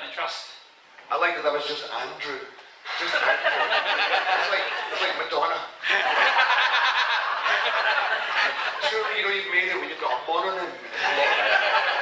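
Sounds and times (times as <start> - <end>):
group of people laughing: 2.9 - 5.2, 5.8 - 10.0, 10.8 - 12.0.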